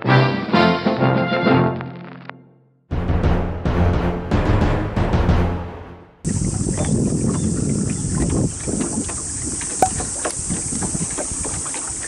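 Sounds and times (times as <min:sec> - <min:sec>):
wind on microphone: 0:06.2 - 0:12.0
water lapping at hull: 0:06.3 - 0:12.0.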